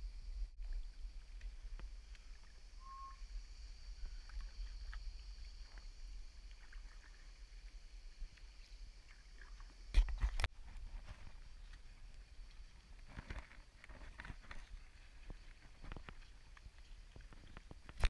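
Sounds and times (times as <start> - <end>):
water lapping and dripping: 4.0 - 18.0.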